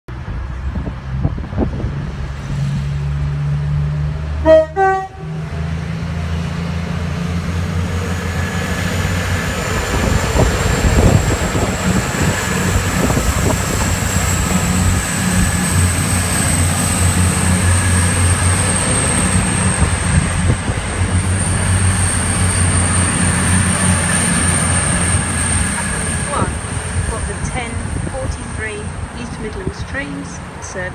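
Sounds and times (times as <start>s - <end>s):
diesel train engines droning: 0.1s - 30.9s
train horn toot: 4.4s - 5.4s.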